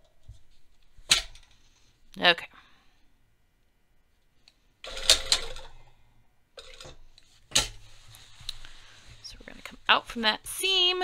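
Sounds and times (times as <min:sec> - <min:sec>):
fabric handled: 0:07.2 - 0:11.0.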